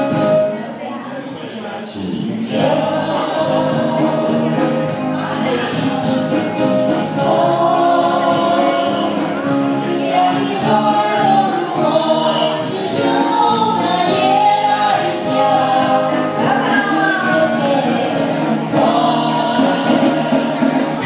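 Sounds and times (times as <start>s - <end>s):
band with keyboard and drums: 0.0s - 21.0s
voices singing together: 0.0s - 21.0s.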